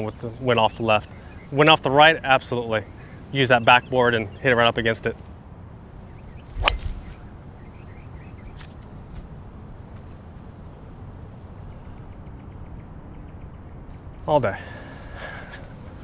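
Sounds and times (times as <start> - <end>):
faint outdoor background: 0.0 - 16.0
golf ball struck by driver: 6.5 - 7.3.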